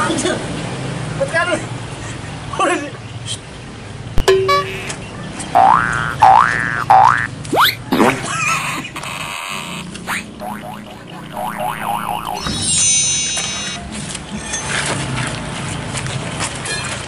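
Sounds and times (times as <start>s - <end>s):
upward-swooping cartoon tones: 4.2s - 8.3s, 9.1s - 13.0s
wobbling springy boing: 4.2s - 8.3s, 10.1s - 12.7s
small warbling glides: 10.1s - 12.6s.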